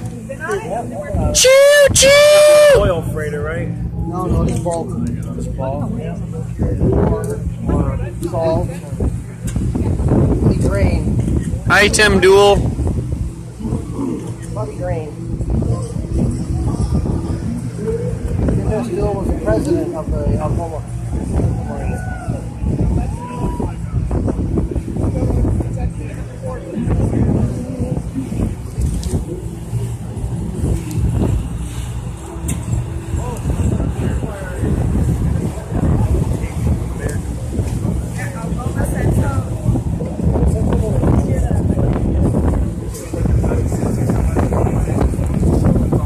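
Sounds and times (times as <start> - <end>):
people talking: 0.0 - 12.6, 33.0 - 46.0
boat engine droning: 0.0 - 46.0.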